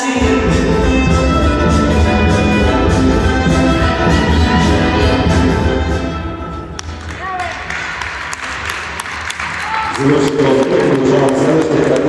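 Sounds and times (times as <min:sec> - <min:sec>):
audience applauding: 0:06.8 - 0:12.0.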